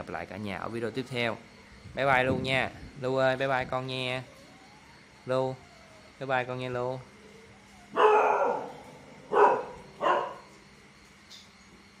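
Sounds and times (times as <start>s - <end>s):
dog barking: 7.9s - 10.5s.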